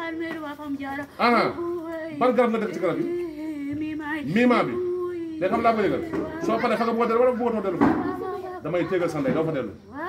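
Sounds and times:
voices speaking: 0.0s - 10.0s.

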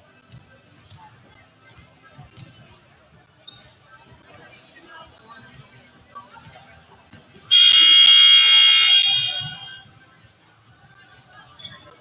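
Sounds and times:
scoreboard buzzer: 7.5s - 9.8s.

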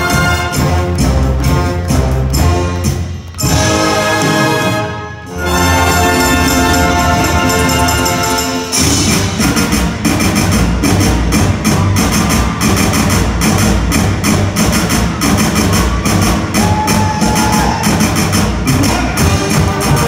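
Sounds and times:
brass band playing: 0.0s - 20.0s
driving drum beat: 5.6s - 20.0s.

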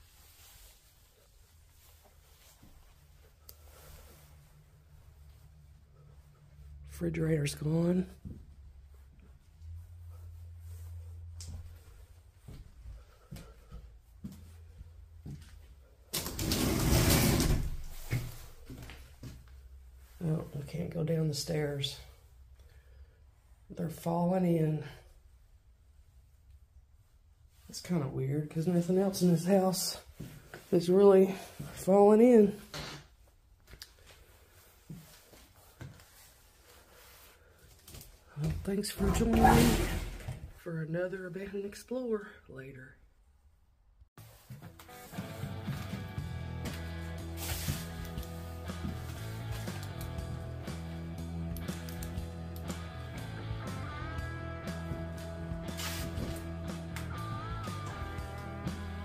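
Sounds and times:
faint soft footsteps: 0.0s - 16.1s, 17.8s - 20.8s, 28.9s - 39.3s, 44.2s - 50.6s
door scraping open: 16.2s - 18.4s, 39.0s - 40.4s.

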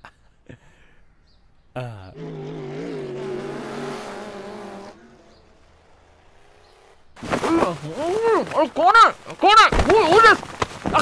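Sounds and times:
video game car engine: 1.8s - 8.1s.

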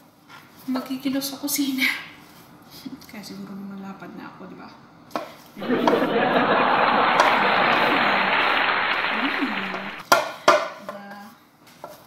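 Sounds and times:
people laughing: 5.6s - 10.0s.

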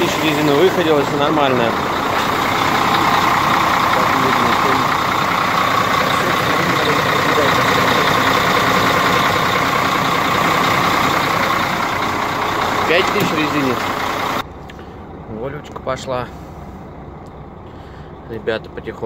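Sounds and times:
truck diesel engine idling: 0.0s - 19.0s.

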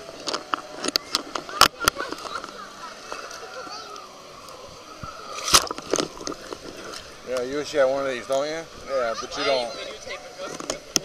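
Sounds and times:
people's voices: 0.0s - 11.0s
pool water splashing: 0.0s - 11.0s.

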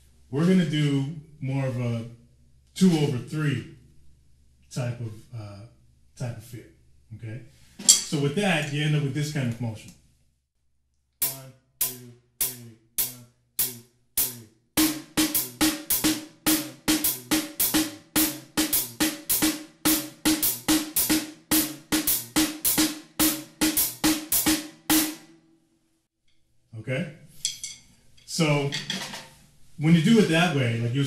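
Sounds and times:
drum kit playing: 11.2s - 25.3s.

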